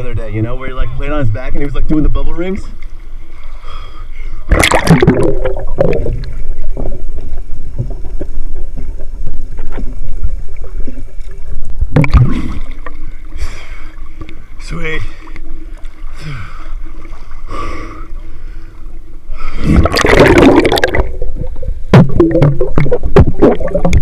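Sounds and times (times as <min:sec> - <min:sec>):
muffled underwater rumble: 0:00.0 - 0:24.0
loud water splash: 0:04.5 - 0:06.1, 0:19.6 - 0:21.2
clicks and gurgles of bubbles: 0:04.5 - 0:13.0, 0:19.7 - 0:24.0.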